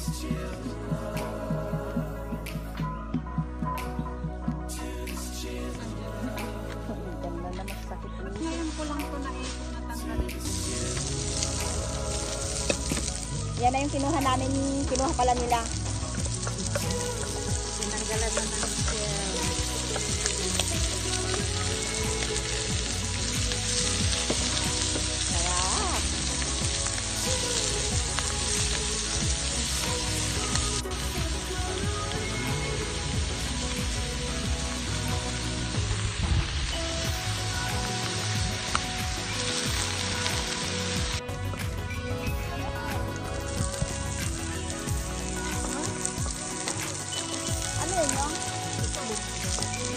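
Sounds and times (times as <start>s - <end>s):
shellfish sizzling in a pan: 8.3s - 9.8s, 10.4s - 49.9s.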